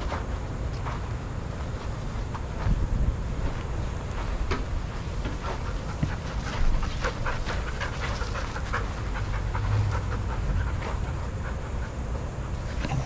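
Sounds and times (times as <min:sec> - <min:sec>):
low steady rumble: 0:00.0 - 0:13.0
dog panting: 0:04.8 - 0:13.0.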